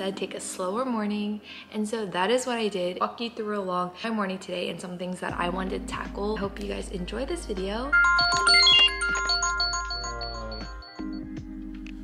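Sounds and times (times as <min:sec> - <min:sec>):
phone alarm chiming: 0:07.9 - 0:11.3.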